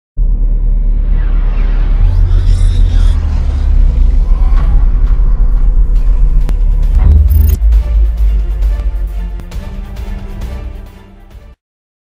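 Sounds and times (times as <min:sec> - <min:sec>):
heavy low rumble: 0:00.2 - 0:10.0
cinematic intro music: 0:00.2 - 0:11.6.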